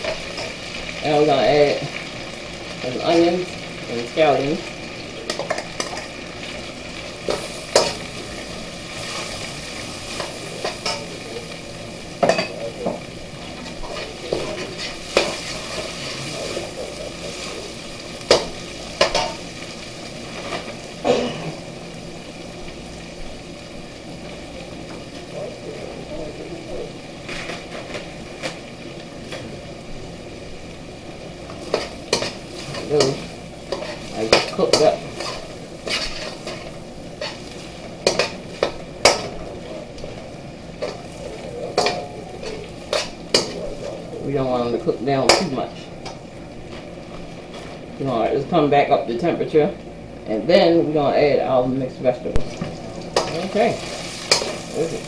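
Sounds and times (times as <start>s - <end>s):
food sizzling in a wok: 0.0s - 55.0s
metal spatula scraping a wok: 13.6s - 16.6s, 31.6s - 39.3s.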